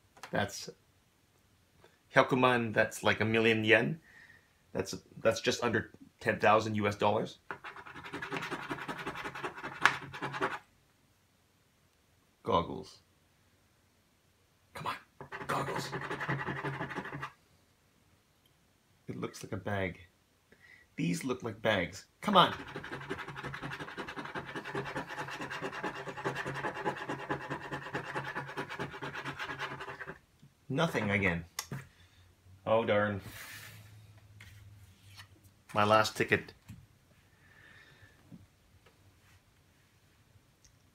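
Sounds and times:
coin scratching lottery ticket: 0:07.5 - 0:10.6, 0:15.2 - 0:17.3, 0:22.4 - 0:30.2.

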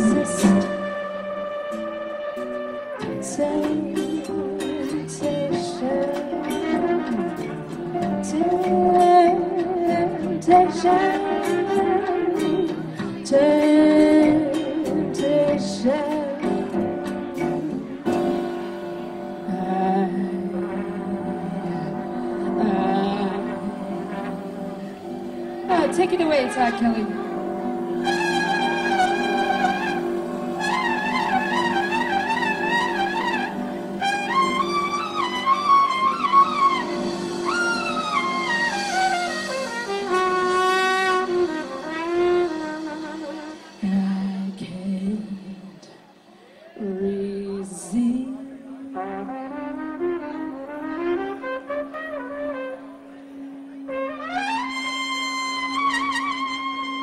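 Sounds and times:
trumpet solo: 0:00.0 - 0:13.0, 0:18.0 - 0:43.8, 0:48.9 - 0:57.0
live band accompaniment: 0:00.0 - 0:57.0.

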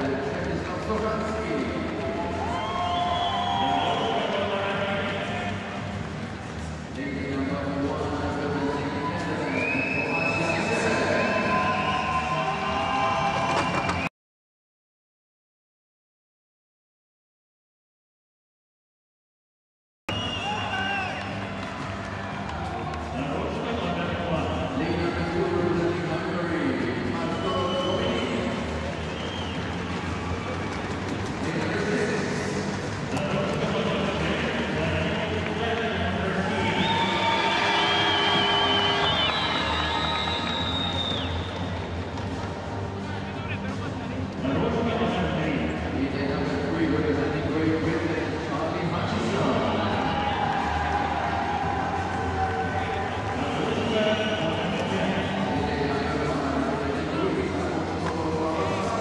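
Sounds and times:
music over loudspeakers: 0:00.0 - 0:14.0, 0:20.1 - 0:59.0
crowd noise in echoing hall: 0:00.0 - 0:14.1, 0:20.1 - 0:59.0.

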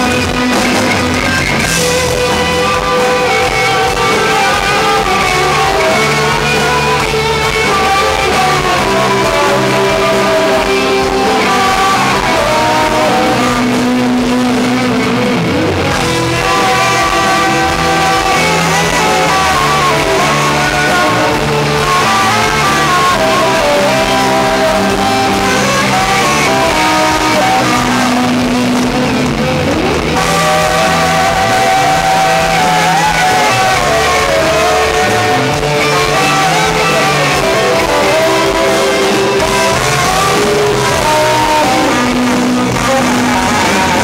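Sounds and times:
distorted electric guitar note: 0:00.0 - 0:44.0
live rock band playing: 0:00.0 - 0:44.0.

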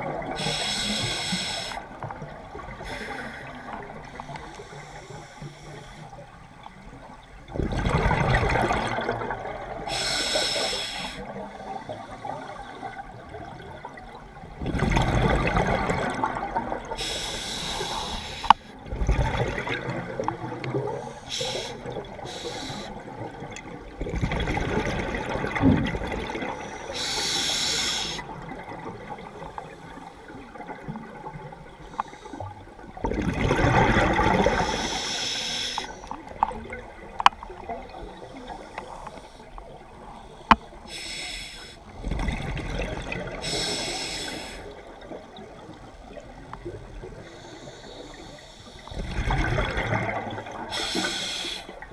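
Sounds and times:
scuba regulator breathing underwater: 0:00.3 - 0:01.9, 0:02.8 - 0:03.8, 0:09.9 - 0:11.3, 0:16.9 - 0:18.8, 0:20.9 - 0:23.2, 0:26.6 - 0:28.4, 0:33.8 - 0:36.2, 0:40.1 - 0:41.9, 0:43.3 - 0:44.9, 0:47.2 - 0:51.9.

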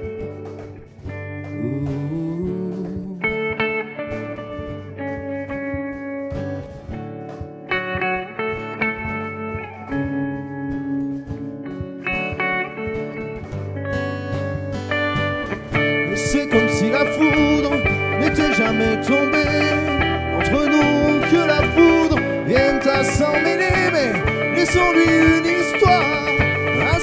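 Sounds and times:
acoustic guitar accompaniment: 0:00.0 - 0:27.0
electric guitar lead: 0:00.0 - 0:27.0.

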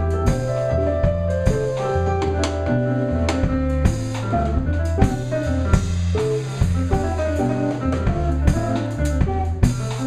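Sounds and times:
drum kit hits: 0:00.0 - 0:10.0
electric bass: 0:00.0 - 0:10.0
keyboard chords: 0:00.0 - 0:10.0.

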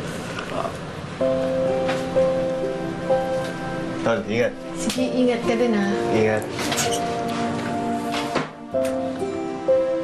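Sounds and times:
soft music with held notes: 0:01.1 - 0:10.0.

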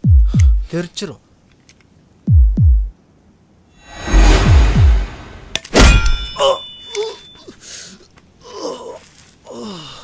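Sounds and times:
rising swell of noise: 0:03.8 - 0:05.6
sharp loud impact hit: 0:03.9 - 0:06.4.

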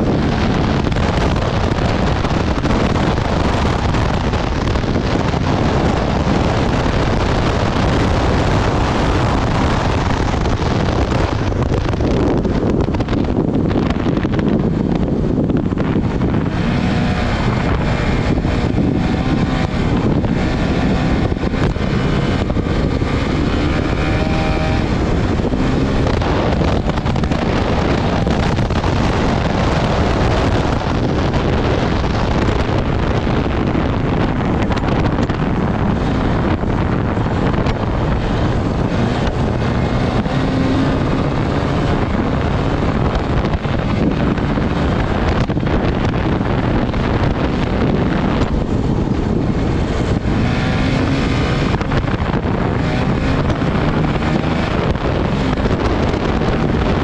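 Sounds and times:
motorcycle engine running hard: 0:00.0 - 0:57.0
wind noise on microphone: 0:00.0 - 0:57.0.

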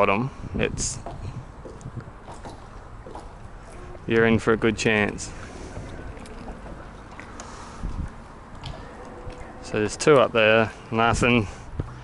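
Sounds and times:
water around a boat: 0:00.0 - 0:12.0
wind: 0:00.0 - 0:12.0.

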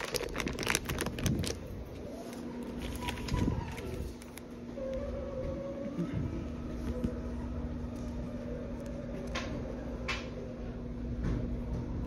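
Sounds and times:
paper rustling: 0:00.0 - 0:01.6, 0:02.2 - 0:04.4
plastic mailer crinkling and tearing: 0:00.0 - 0:04.5.

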